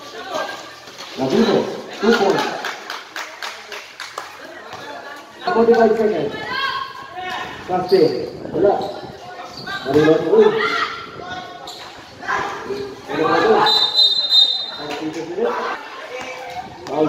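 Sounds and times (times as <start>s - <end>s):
people calling out: 9.1s - 16.7s
referee's whistle blast: 13.6s - 14.8s.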